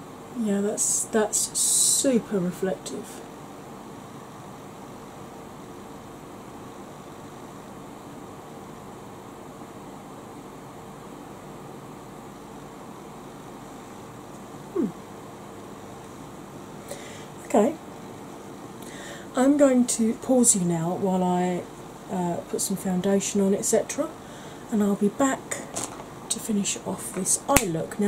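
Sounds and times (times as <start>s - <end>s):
background hiss: 0.0s - 28.0s
faint hum: 0.0s - 28.0s
person murmuring: 14.7s - 15.0s.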